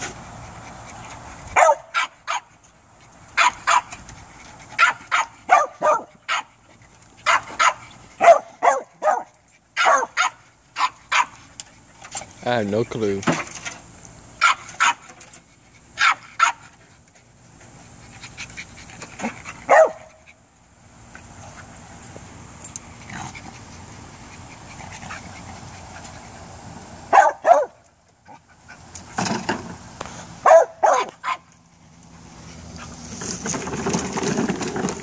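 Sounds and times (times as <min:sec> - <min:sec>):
small dog barking: 0:01.6 - 0:02.5, 0:03.4 - 0:03.9, 0:04.8 - 0:06.5, 0:07.2 - 0:11.4, 0:14.4 - 0:15.0, 0:16.0 - 0:16.6, 0:19.7 - 0:20.1, 0:27.1 - 0:27.8, 0:30.4 - 0:31.5.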